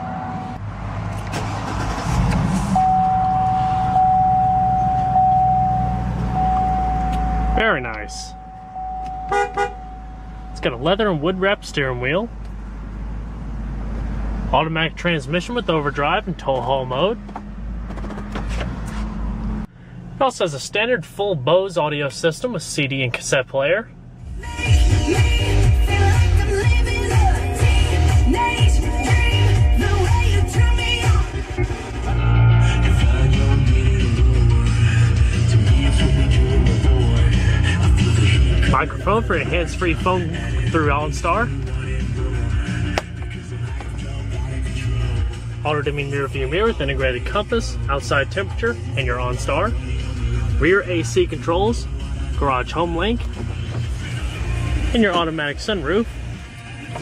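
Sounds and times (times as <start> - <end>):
car engine starting and idling: 0.0 - 57.0
steady high-pitched tone: 2.8 - 11.9
radio music with heavy bass: 6.9 - 8.4, 10.2 - 12.3, 24.6 - 57.0.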